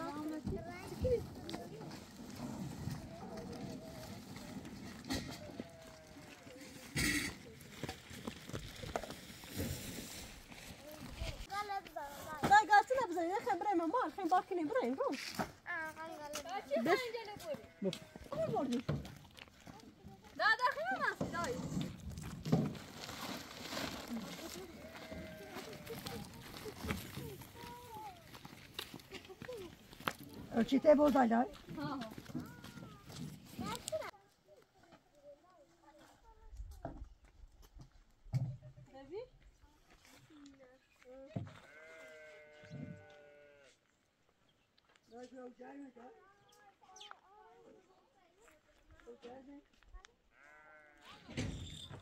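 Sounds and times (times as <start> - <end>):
faint footsteps: 0.0 - 38.3, 39.1 - 51.2
sheep or goat bleat: 17.4 - 18.4, 24.6 - 26.4, 41.6 - 43.8, 50.3 - 51.2.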